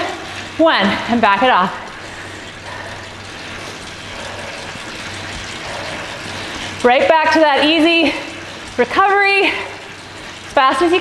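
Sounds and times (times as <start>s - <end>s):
bike trainer whirring: 0.0s - 10.6s.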